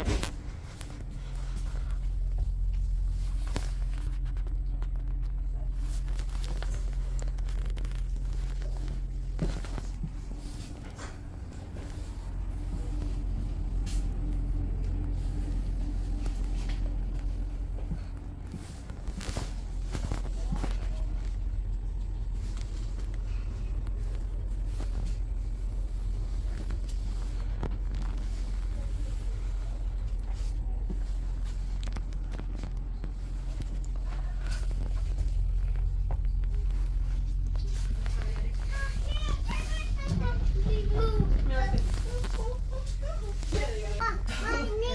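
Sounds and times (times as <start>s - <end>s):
train equipment hum: 0.0s - 44.9s.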